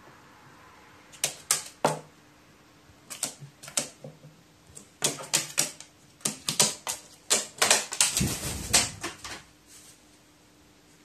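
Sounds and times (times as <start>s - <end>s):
beak tapping on metal table: 5.0s - 8.2s
low rumbling rustle: 8.1s - 10.0s.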